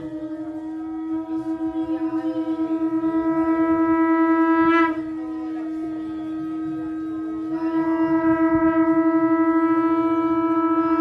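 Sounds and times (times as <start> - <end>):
conch shell blown: 0.0 - 11.0.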